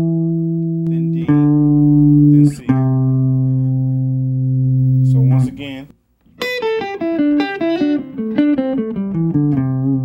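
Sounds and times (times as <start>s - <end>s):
guitar note ringing: 0.0s - 10.0s.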